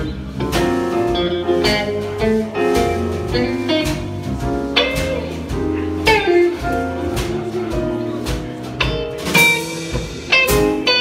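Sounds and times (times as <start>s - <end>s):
drum kit beat: 0.0s - 11.0s
electric guitar: 0.0s - 11.0s.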